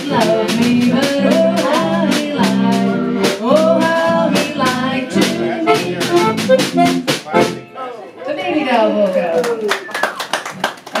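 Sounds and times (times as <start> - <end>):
hand clapping: 9.4 - 11.0.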